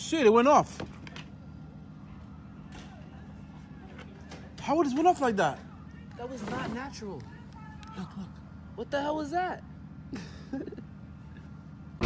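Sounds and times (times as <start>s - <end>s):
low hum of night street: 0.0s - 12.0s.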